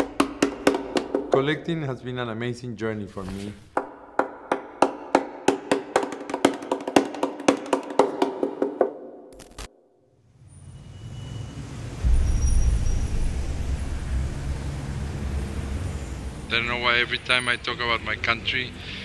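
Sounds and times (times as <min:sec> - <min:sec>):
heavy traffic rumble: 0:11.6 - 0:18.8.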